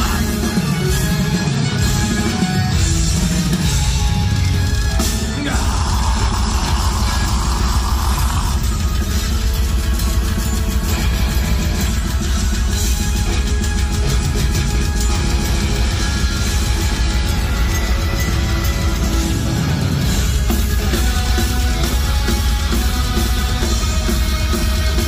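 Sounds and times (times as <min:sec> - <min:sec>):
bass guitar: 0:00.0 - 0:25.0
distorted electric guitars: 0:00.0 - 0:25.0
drums: 0:00.0 - 0:25.0.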